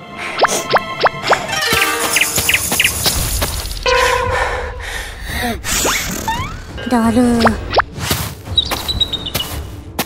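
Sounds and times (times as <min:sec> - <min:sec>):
birds chirping: 0:01.7 - 0:04.3, 0:08.4 - 0:09.9.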